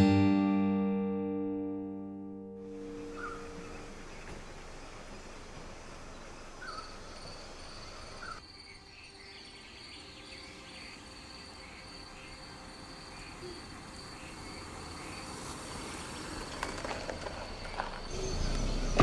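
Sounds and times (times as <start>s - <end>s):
faint car approaching: 2.6s - 8.4s, 9.7s - 19.0s
insects trilling: 2.8s - 19.0s.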